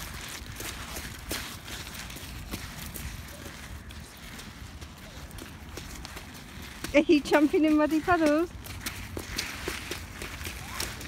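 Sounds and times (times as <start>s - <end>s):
footsteps crunching on pebbles: 0.0s - 11.0s.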